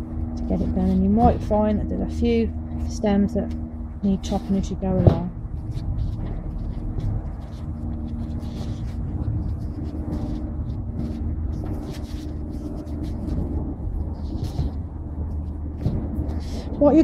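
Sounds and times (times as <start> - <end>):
low rumble and faint hum: 0.0 - 17.0
leaves rustling and stems snapping: 4.2 - 17.0.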